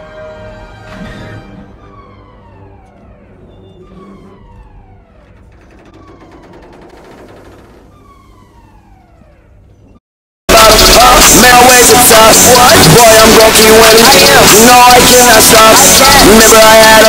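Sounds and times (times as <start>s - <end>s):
falling siren-like alarm tone: 0.0s - 10.0s.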